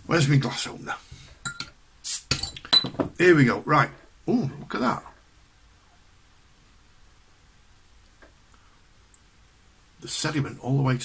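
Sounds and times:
hiss of escaping gas: 2.0 - 2.4
bottle opener clinking on glass bottle: 2.3 - 3.1.

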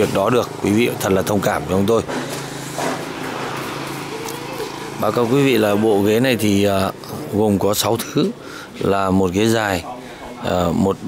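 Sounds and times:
engine humming steadily: 0.0 - 11.0.

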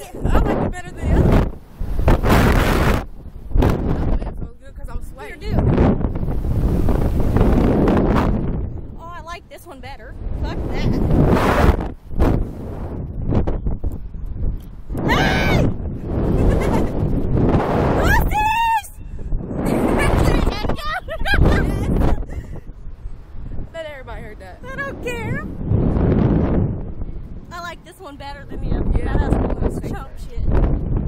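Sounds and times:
wind buffeting microphone: 0.0 - 31.0
women shrieking and laughing: 16.4 - 17.0, 19.7 - 22.5.

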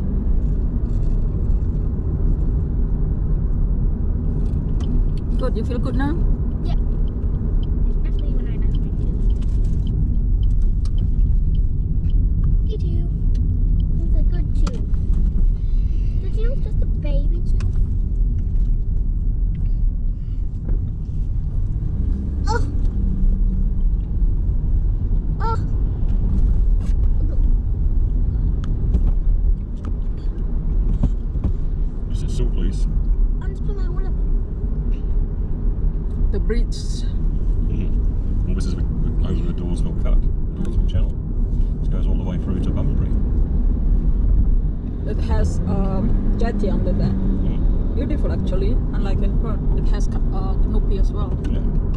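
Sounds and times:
car road and engine rumble: 0.0 - 51.9.

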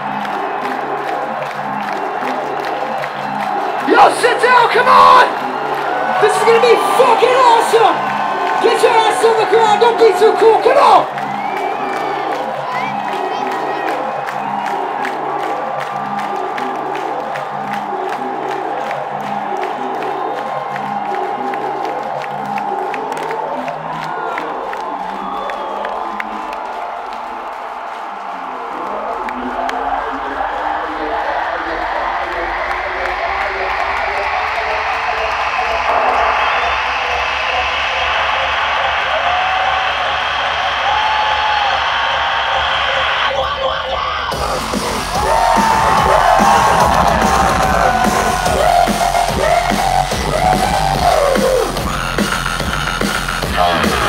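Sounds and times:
crowd cheering: 0.0 - 54.0
dubstep through sound system: 30.1 - 54.0.

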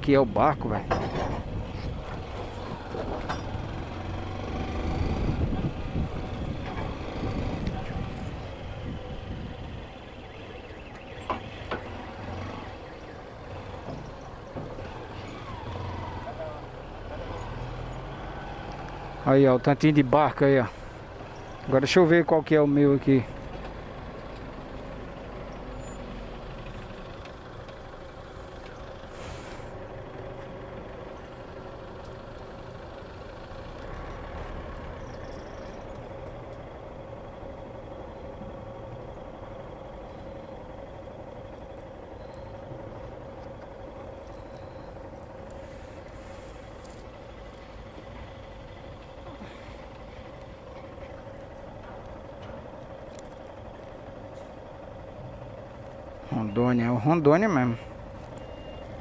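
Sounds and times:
engine idling: 0.0 - 59.0
brief hisses: 29.1 - 29.8.

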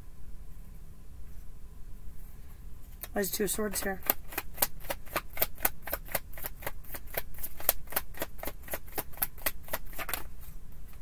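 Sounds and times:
cards being shuffled: 3.0 - 11.0.

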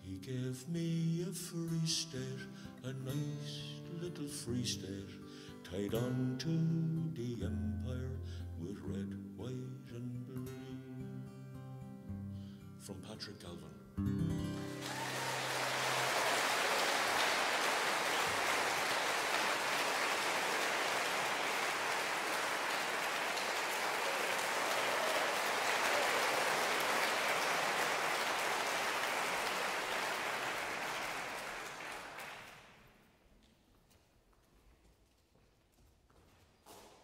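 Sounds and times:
audience applauding: 14.6 - 32.9.

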